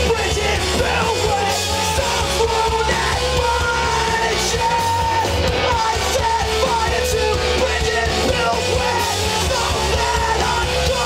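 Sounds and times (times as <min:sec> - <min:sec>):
bass guitar: 0:00.0 - 0:11.0
drums: 0:00.0 - 0:11.0
electric guitars: 0:00.0 - 0:11.0
sung lead vocal: 0:00.0 - 0:11.0.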